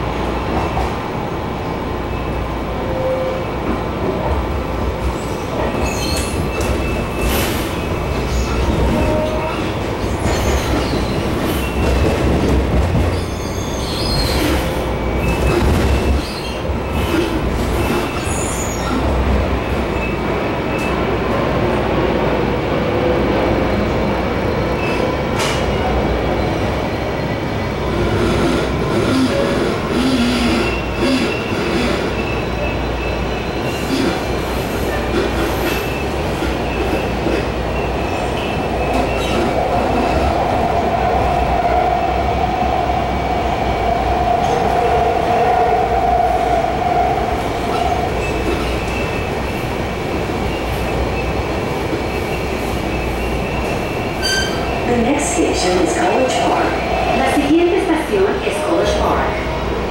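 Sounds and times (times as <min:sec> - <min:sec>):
train wheels rumbling: 0:00.0 - 0:59.9.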